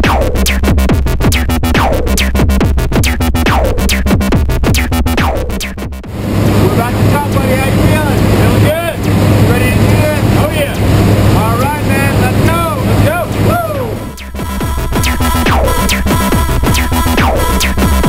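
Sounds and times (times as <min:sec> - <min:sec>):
electronic dance music: 0:00.0 - 0:06.1, 0:12.5 - 0:18.0
plane engine drone: 0:05.2 - 0:18.0.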